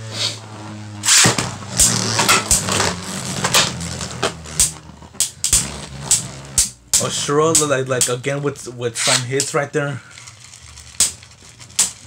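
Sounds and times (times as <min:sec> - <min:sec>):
sharp plastic clacks: 0:10.9 - 0:12.0.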